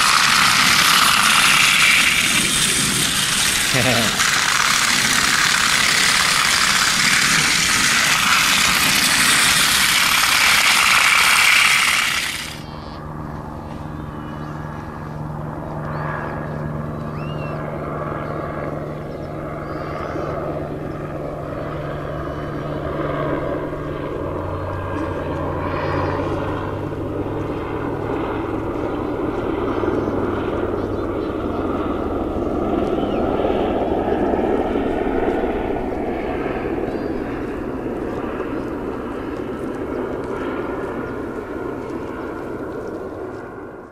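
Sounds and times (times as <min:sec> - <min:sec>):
toy train running on track: 0:00.0 - 0:12.7
low drone: 0:00.0 - 0:43.9.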